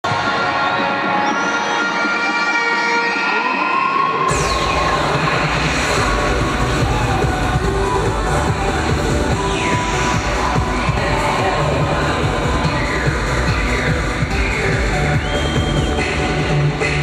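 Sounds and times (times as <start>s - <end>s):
crowd cheering and shouting: 0.0s - 17.0s
electronic music with heavy bass: 0.0s - 17.0s.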